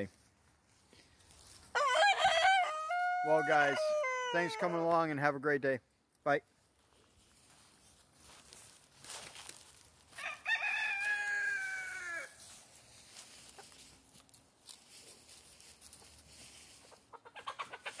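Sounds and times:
rooster crowing: 1.7s - 4.8s, 10.1s - 12.4s
chickens clucking: 16.0s - 18.0s.

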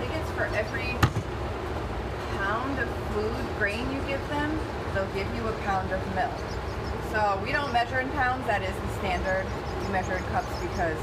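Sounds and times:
woman's voice: 0.0s - 1.1s, 2.3s - 11.0s.

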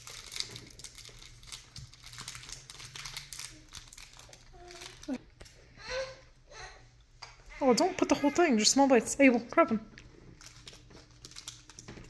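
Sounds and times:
wrapper crinkling: 0.0s - 5.6s, 9.9s - 12.0s.

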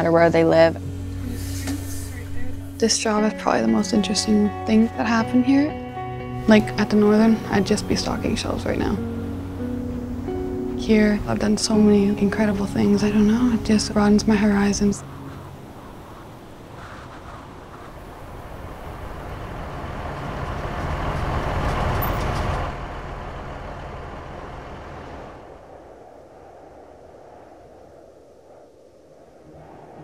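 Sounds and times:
off-road vehicle rumbling: 0.0s - 5.7s, 6.3s - 25.6s.

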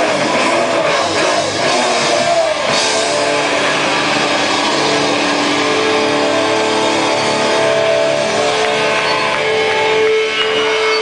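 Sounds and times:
distorted electric guitars: 0.0s - 11.0s
heavy metal band playing live: 0.0s - 11.0s.

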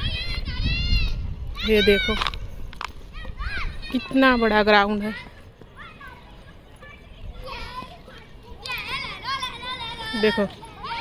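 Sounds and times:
children shouting while playing: 0.0s - 2.4s, 3.0s - 11.0s.

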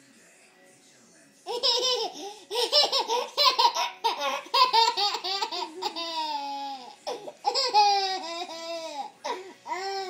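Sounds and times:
toddler laughing: 1.5s - 10.0s.

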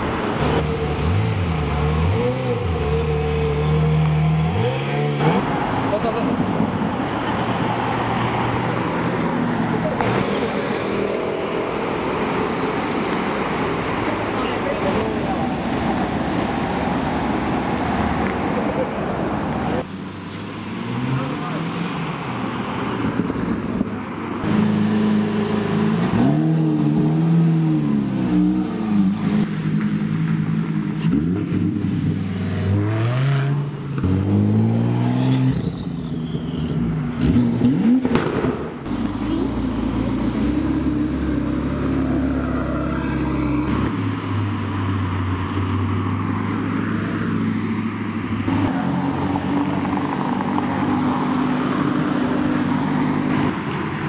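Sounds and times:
car engines revving: 0.0s - 54.0s.

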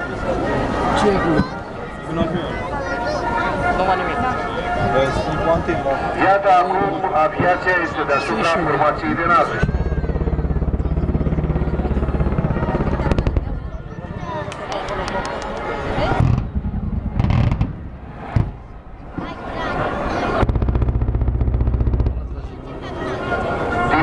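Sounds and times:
sharp bangs: 9.5s - 19.3s, 20.3s - 23.4s
rapid gunfire bursts: 20.4s - 22.6s.

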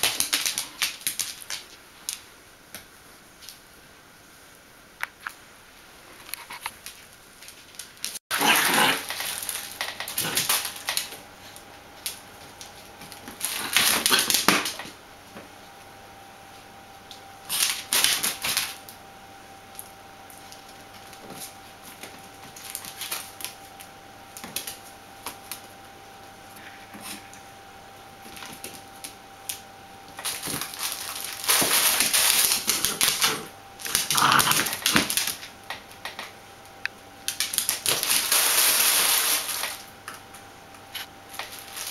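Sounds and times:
puppy claws scrabbling on tiles: 0.0s - 2.3s, 6.2s - 15.0s, 30.1s - 36.3s
puppies growling and grunting: 8.3s - 9.3s, 32.7s - 35.1s.

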